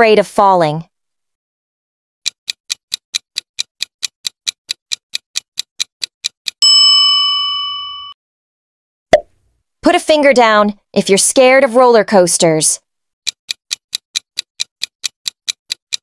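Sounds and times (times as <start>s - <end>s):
clock ticking: 2.2s - 6.6s, 13.2s - 16.0s
bell ding: 6.6s - 8.2s.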